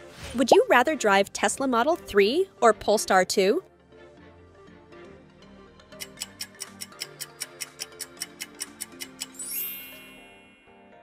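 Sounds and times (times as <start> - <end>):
light background music: 0.0 - 11.0
fast clock-like ticks: 6.0 - 9.4
rising shimmer of high tones: 9.4 - 11.0.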